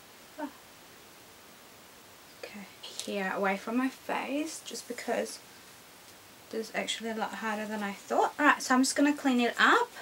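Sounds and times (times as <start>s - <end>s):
low hiss: 0.0s - 10.0s
woman speaking softly: 2.4s - 5.4s, 6.5s - 10.0s.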